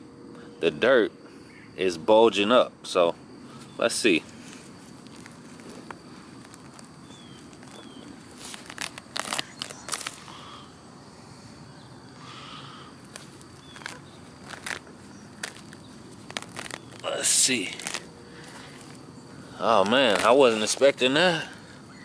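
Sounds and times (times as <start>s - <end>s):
hands digging through soil: 4.4s - 10.4s, 13.0s - 19.0s, 19.6s - 21.2s.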